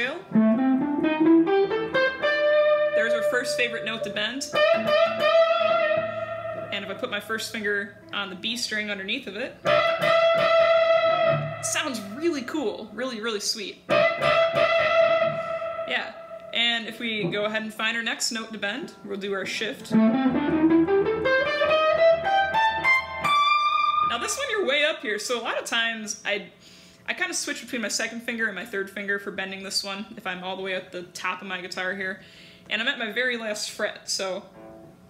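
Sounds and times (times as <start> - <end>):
clean electric guitar scale: 0.3 - 8.4, 19.8 - 24.5.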